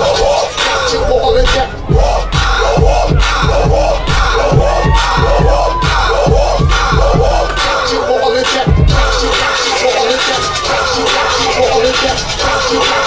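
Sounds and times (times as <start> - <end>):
crowd shouting and chanting: 0.0 - 13.0.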